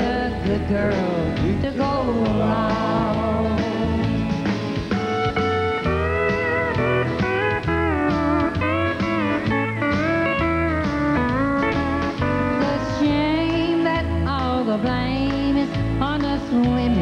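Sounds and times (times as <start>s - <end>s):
bass and drum rhythm: 0.0s - 17.0s
pedal steel guitar sliding notes: 2.1s - 16.9s.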